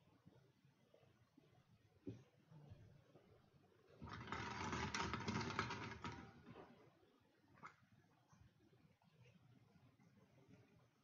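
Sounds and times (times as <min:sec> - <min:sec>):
plastic balls clattering in glass bowl: 0:04.0 - 0:06.4.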